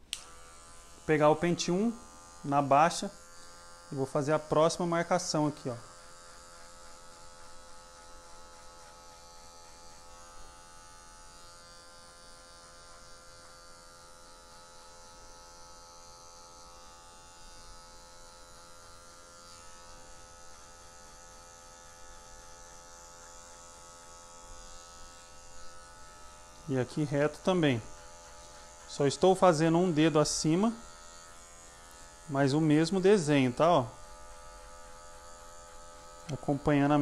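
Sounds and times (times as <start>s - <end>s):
electric hair clipper buzzing: 0.0s - 37.0s.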